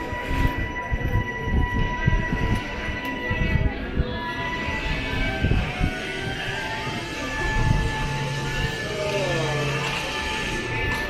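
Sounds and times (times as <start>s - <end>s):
steady high-pitched tone: 0.0s - 11.0s
higher tone: 7.2s - 10.8s.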